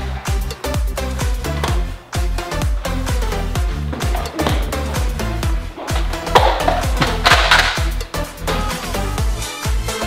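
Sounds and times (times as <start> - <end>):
dance music with kick-drum beat: 0.0 - 10.0.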